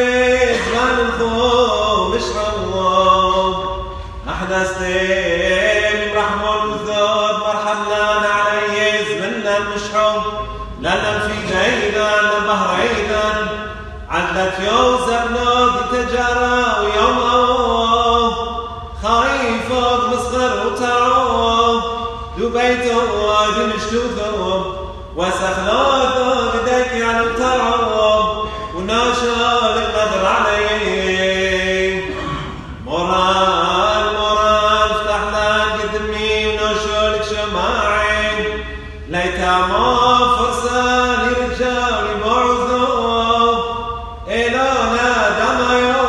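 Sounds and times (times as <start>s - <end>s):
person chanting a hymn: 0.0s - 46.0s.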